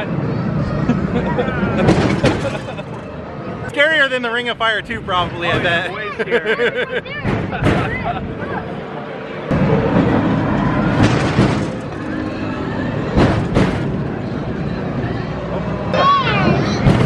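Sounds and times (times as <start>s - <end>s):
ride car rumbling on track: 0.0s - 17.0s.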